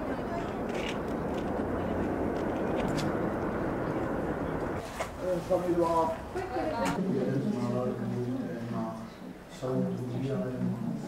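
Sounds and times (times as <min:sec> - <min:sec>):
outdoor background rumble: 0:00.0 - 0:04.8.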